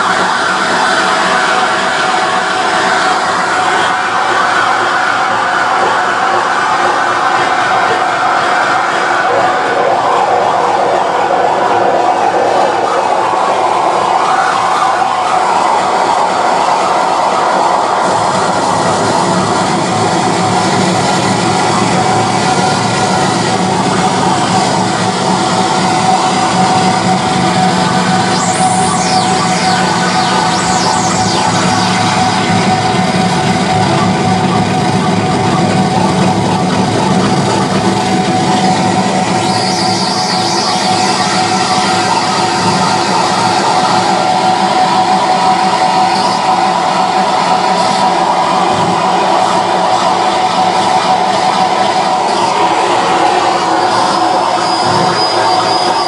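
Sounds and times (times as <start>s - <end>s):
distorted harsh noise music: 0.0s - 56.0s
high drone: 0.0s - 56.0s
falling squeals: 51.6s - 56.0s.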